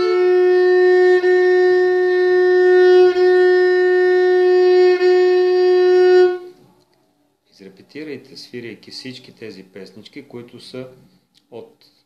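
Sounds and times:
bowed fiddle long note: 0.0s - 6.6s.

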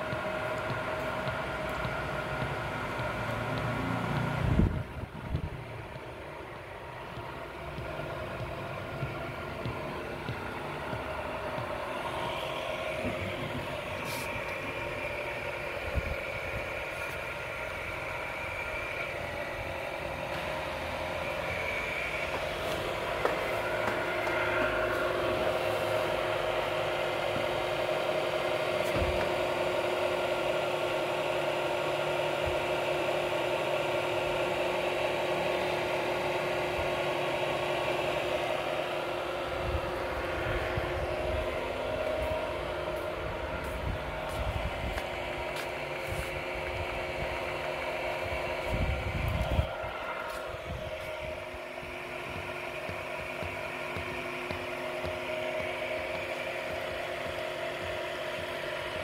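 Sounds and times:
machinery motor hum: 0.0s - 59.0s.

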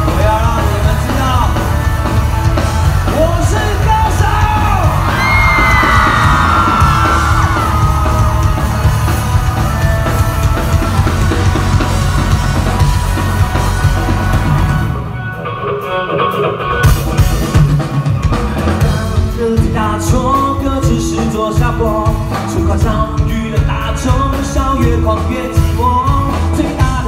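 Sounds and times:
rock band playing: 0.0s - 27.0s
person yelling and singing: 3.1s - 8.5s.

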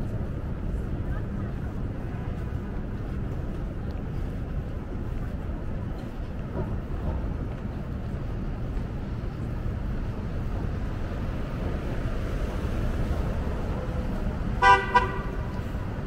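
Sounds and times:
city street traffic rumble: 0.0s - 16.0s
vehicle horn double honk: 14.6s - 15.6s.

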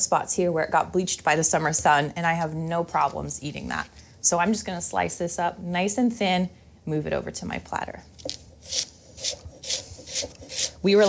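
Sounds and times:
knife slicing cabbage on board: 8.2s - 11.0s.

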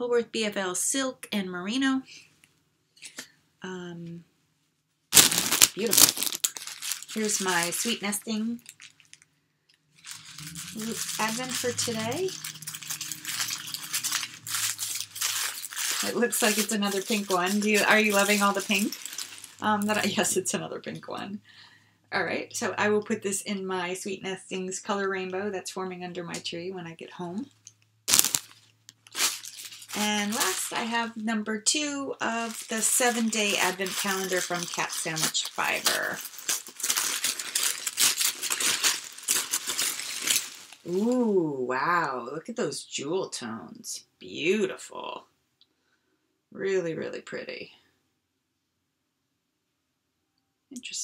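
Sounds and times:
wrapping paper crinkling: 5.1s - 9.3s, 10.0s - 20.4s, 28.1s - 31.2s, 32.2s - 41.1s.

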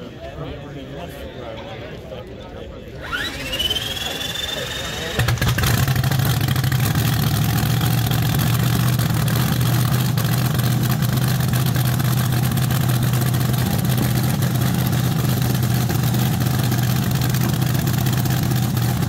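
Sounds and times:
dragster engine starting and idling: 3.0s - 19.0s.

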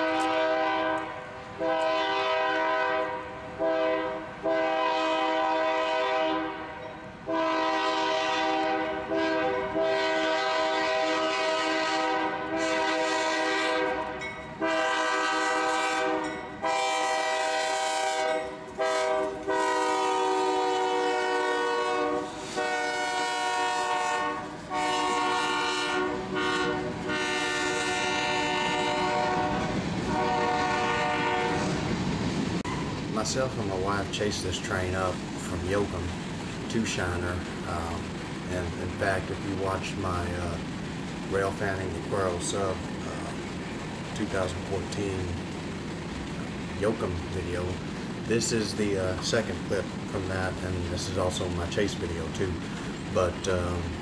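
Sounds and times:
locomotive air horn blasts: 0.0s - 31.8s
train rumbling past: 0.0s - 54.0s.

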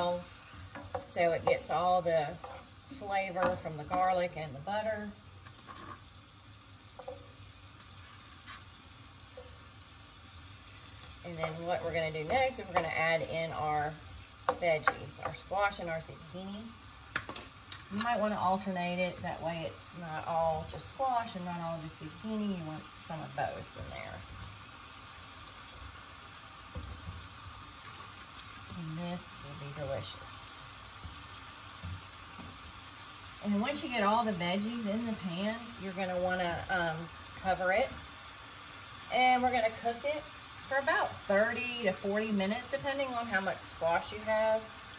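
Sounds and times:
onion sizzling in butter: 0.0s - 44.9s
spoon scraping and tapping pan: 0.6s - 4.3s, 5.4s - 6.1s, 7.0s - 8.6s, 11.3s - 13.0s, 14.4s - 15.5s.

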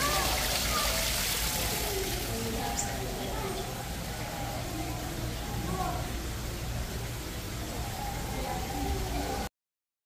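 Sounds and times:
waterfall splashing into pool: 0.0s - 3.0s
people talking faintly: 0.0s - 9.5s.

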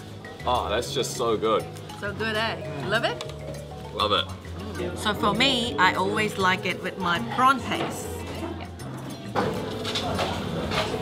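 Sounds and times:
utensils clinking on dishes: 7.6s - 11.0s.

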